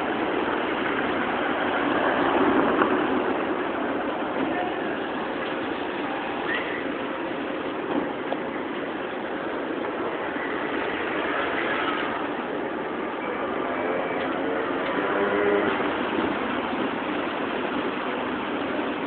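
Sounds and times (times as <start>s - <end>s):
bus passing: 0.0s - 19.0s
passing vehicles engines and tyres: 0.0s - 19.0s.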